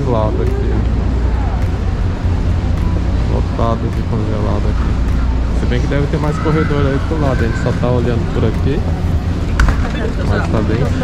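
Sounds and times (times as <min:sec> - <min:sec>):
murmur of shoppers' voices: 0:00.0 - 0:11.0
steady low rumble: 0:00.0 - 0:11.0.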